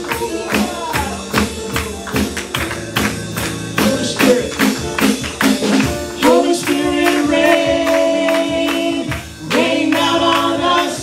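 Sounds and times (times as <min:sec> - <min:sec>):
hands clapping beat: 0:00.0 - 0:11.0
keyboard chords: 0:00.0 - 0:11.0.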